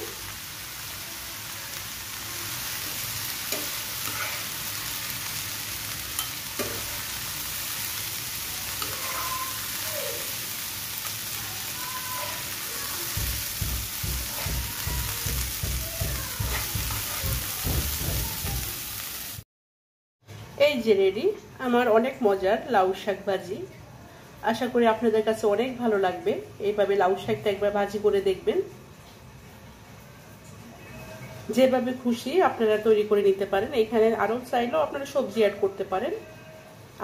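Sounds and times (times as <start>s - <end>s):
greens sizzling in a frying pan: 0.0s - 19.4s
metal spatula stirring: 2.8s - 4.8s, 6.1s - 7.4s, 8.6s - 9.8s, 12.2s - 17.5s.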